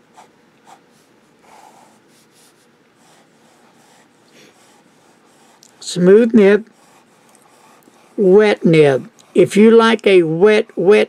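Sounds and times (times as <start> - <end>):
pen nib on paper: 0.0 - 5.8, 6.6 - 8.2.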